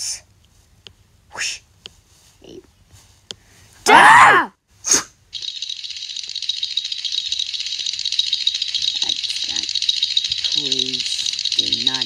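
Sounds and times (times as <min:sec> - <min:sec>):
high hissing rattle: 0:05.4 - 0:12.0.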